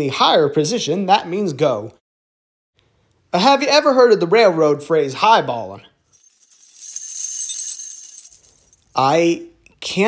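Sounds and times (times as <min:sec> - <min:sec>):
high metallic jingle: 0:06.1 - 0:09.0.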